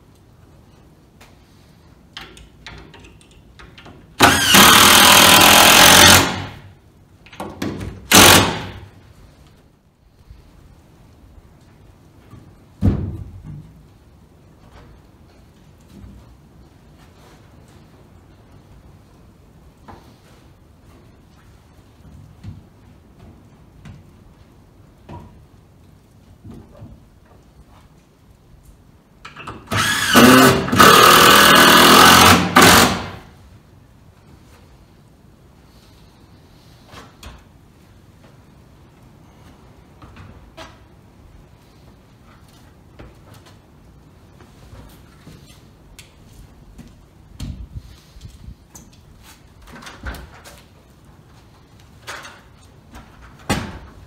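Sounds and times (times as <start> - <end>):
power driver burst: 4.2 - 6.6, 8.1 - 8.9, 29.7 - 33.3.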